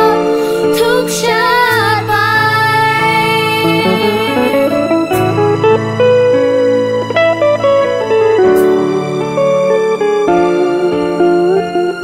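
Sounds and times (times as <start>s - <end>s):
slow instrumental love song: 0.0s - 12.0s.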